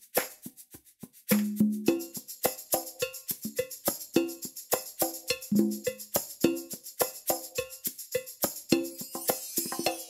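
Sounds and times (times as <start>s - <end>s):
fast percussion metronome loop: 0.0s - 10.0s.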